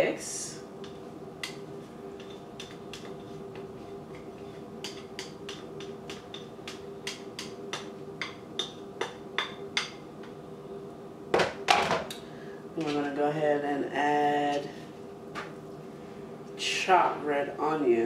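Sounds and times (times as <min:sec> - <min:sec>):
faint steady hum: 0:00.0 - 0:18.0
spoon knocking and scraping bowl: 0:00.8 - 0:10.0.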